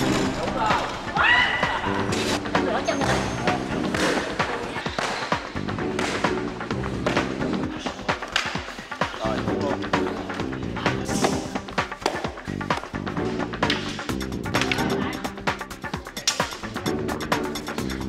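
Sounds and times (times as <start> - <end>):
music with steady beat: 0.0 - 18.0.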